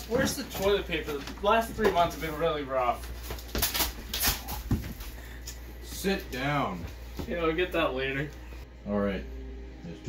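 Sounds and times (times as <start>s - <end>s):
rustling handling noises: 0.0s - 7.5s.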